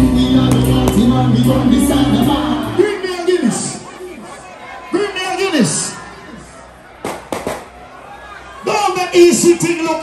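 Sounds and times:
live show background: 0.0s - 10.0s.

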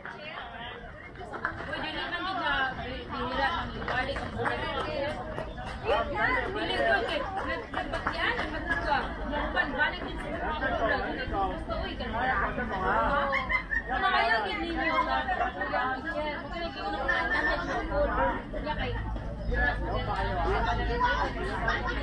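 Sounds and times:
people chatting: 0.0s - 22.0s.

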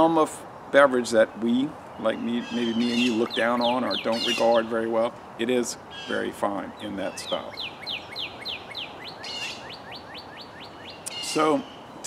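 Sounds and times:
songbird singing whistled notes: 1.3s - 4.8s, 5.9s - 12.0s.

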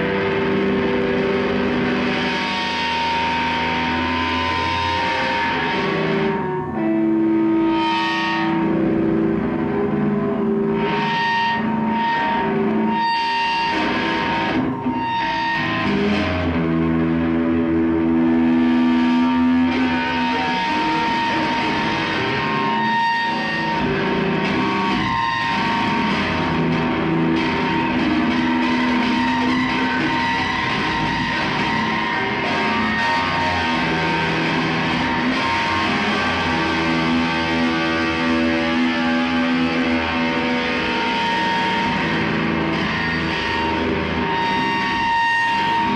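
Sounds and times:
electric guitar through amplifier: 0.0s - 45.9s.

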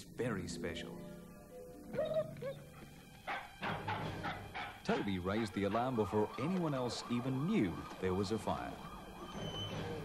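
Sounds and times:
dog whining: 1.9s - 4.8s
dog barking: 2.0s - 6.0s.

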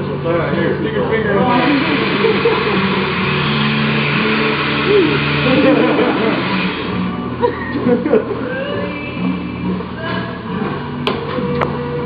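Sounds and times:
milking machinery hum: 0.0s - 12.0s
people talking: 0.2s - 2.8s, 4.9s - 6.5s
people laughing: 1.5s - 3.2s, 4.9s - 6.7s, 7.3s - 8.9s.

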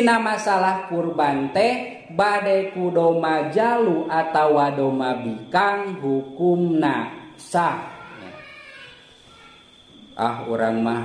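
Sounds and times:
low room noise: 0.0s - 11.0s
faint animal cry: 7.8s - 10.2s.

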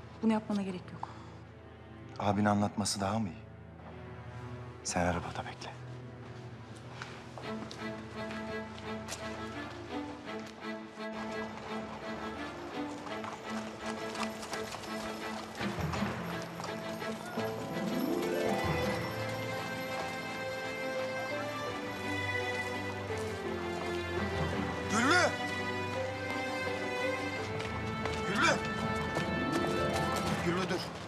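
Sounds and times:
background score of held notes: 7.4s - 31.0s
horse hooves clip-clopping on street: 7.4s - 31.0s.

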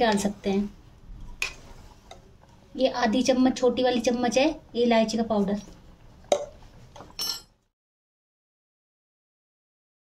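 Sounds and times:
metal spoon clinking against pan: 7.2s - 7.6s.

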